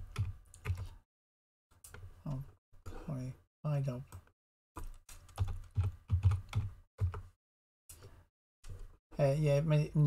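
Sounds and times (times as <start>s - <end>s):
computer keyboard typing: 0.1s - 1.0s, 4.1s - 7.3s.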